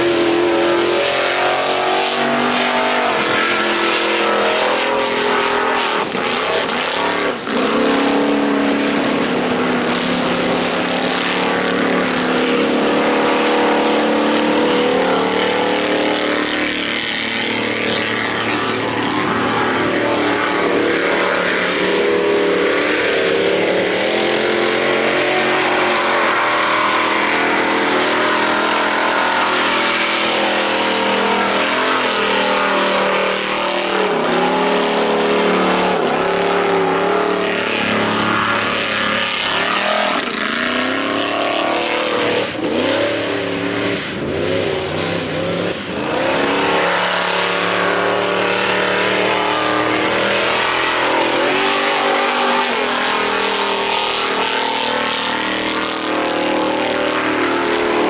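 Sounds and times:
buggy engine revving: 0.0s - 58.0s.

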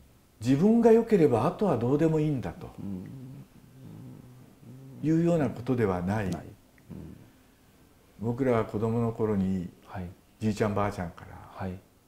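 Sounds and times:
man humming hesitantly: 2.6s - 5.6s, 6.8s - 7.3s.

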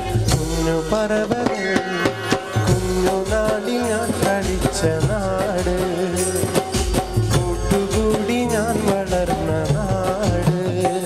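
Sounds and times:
man singing into microphone: 0.0s - 11.0s
percussion: 0.0s - 11.0s
bass line: 2.0s - 11.0s.

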